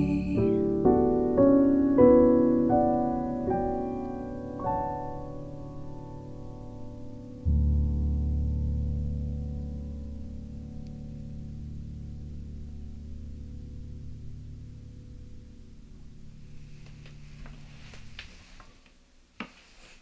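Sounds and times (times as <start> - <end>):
digital piano low chord: 0.0 - 18.2.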